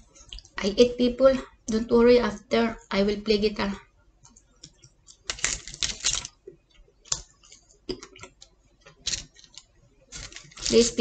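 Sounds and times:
crackling foil and pizza tearing: 5.2s - 6.4s, 8.9s - 11.0s.

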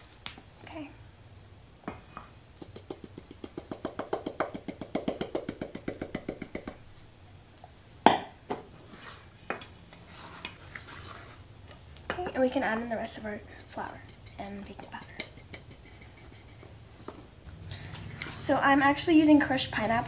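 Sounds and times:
rapid tapping on metal bowl: 2.6s - 6.8s, 13.6s - 16.3s.

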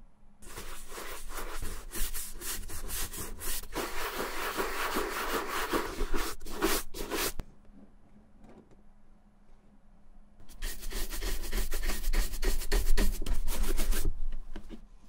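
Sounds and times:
shoe brush scrubbing leather boot: 0.4s - 7.4s, 10.5s - 14.1s.

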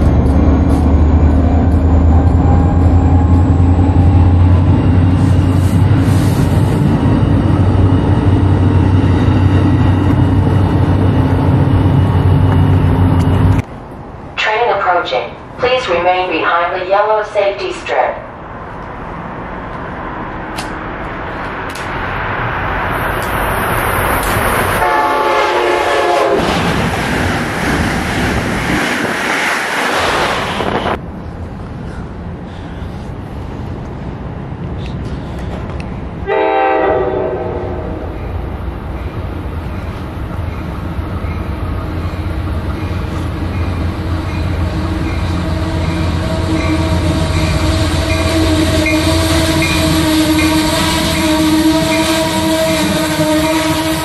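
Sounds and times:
locomotive humming: 0.0s - 14.4s, 18.4s - 54.0s
loud train noise: 0.0s - 54.0s
train horn blowing: 24.8s - 26.5s, 36.2s - 38.2s, 45.4s - 54.0s.

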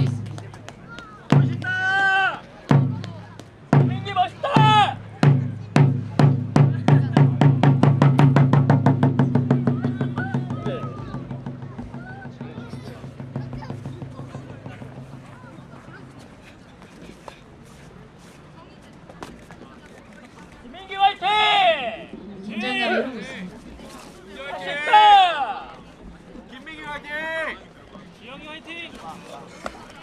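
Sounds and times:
drum beats and fast roll: 1.3s - 1.9s, 2.7s - 16.4s
person shouting: 4.4s - 5.0s.

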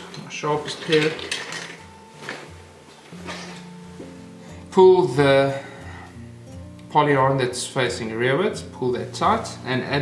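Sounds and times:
metal tools clinking: 0.0s - 1.9s.

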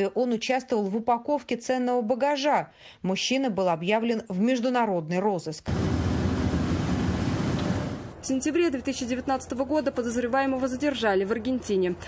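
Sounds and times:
deep rumble with hiss: 5.7s - 8.2s.

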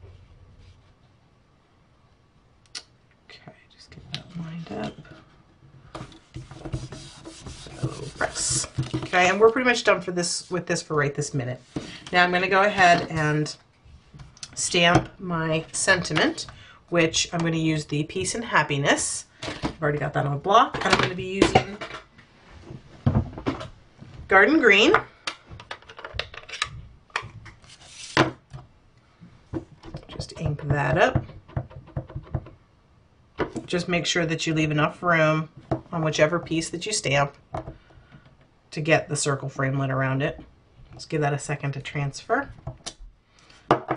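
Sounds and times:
paper rustling: 27.6s - 28.2s
brief sliding rub: 27.7s - 28.2s.

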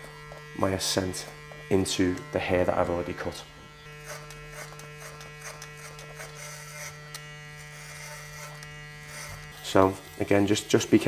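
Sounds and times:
electric hair clippers buzzing: 0.0s - 11.0s
hair crackling as cut: 0.0s - 11.0s.

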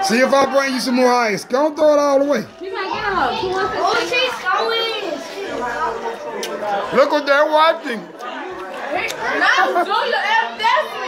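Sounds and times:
indistinct chatter of voices: 0.0s - 11.0s.

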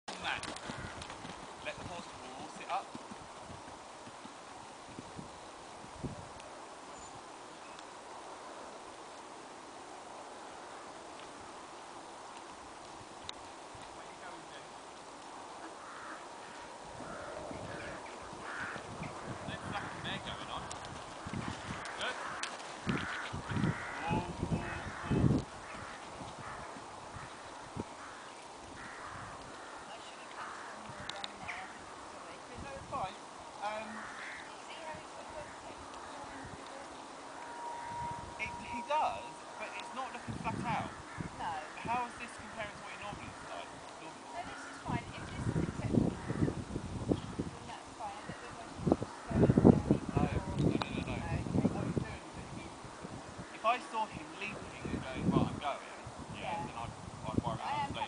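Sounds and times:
horse hoofbeats cantering: 0.1s - 4.6s
horse hooves on soft ground: 0.1s - 6.6s, 11.2s - 40.8s
voices: 15.5s - 46.6s, 47.3s - 58.0s.

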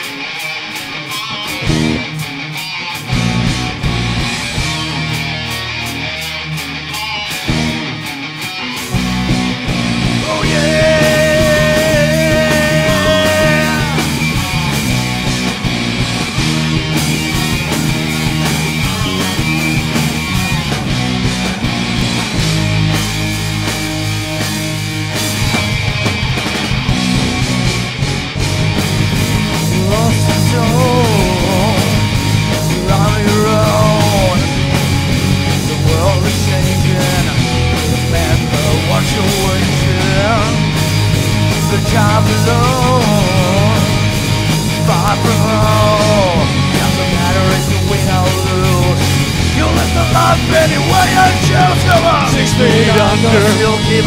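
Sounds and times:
drums: 0.0s - 54.0s
heavy electric guitar chords: 0.0s - 54.0s
live rock band playing: 0.0s - 54.0s.

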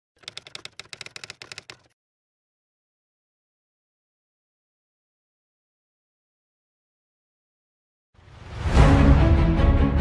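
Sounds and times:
keyboard key clicks: 0.2s - 2.0s.

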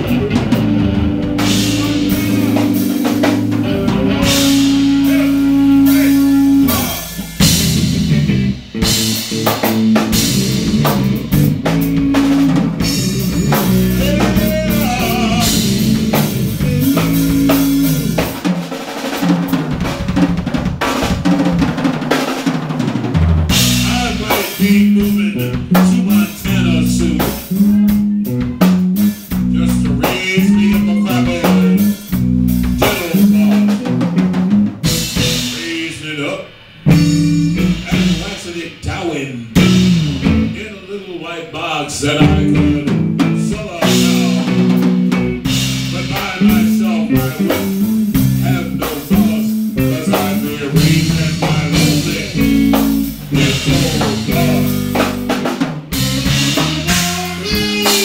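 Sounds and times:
electric bass line: 0.0s - 21.8s, 23.1s - 41.0s, 42.0s - 58.0s
drum kit: 0.0s - 58.0s
electric guitars: 0.0s - 58.0s.

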